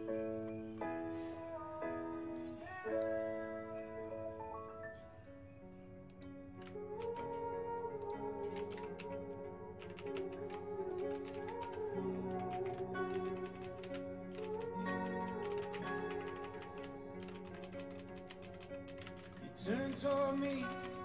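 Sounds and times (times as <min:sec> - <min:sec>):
soft background music: 0:00.0 - 0:21.0
computer keyboard typing: 0:06.1 - 0:21.0.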